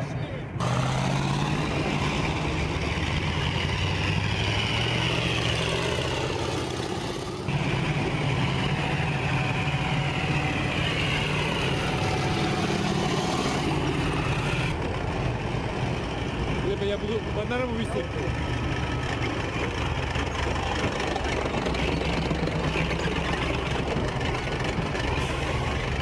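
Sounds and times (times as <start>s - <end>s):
heavy vehicle engine running: 0.0s - 26.0s.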